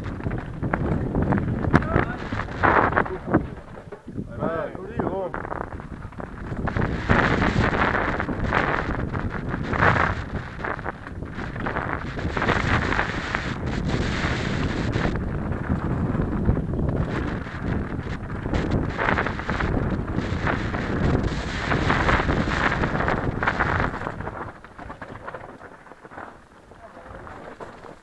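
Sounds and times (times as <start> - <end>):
bike rattling and knocking: 0.0 - 28.0
wind buffeting microphone: 0.0 - 28.0.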